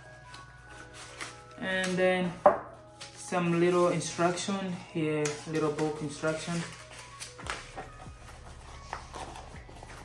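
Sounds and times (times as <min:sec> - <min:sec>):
paper rustling: 0:00.0 - 0:10.0.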